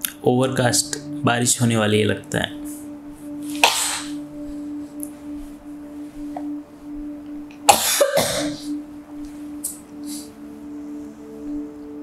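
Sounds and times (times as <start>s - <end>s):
low humming drone: 0.0s - 12.0s.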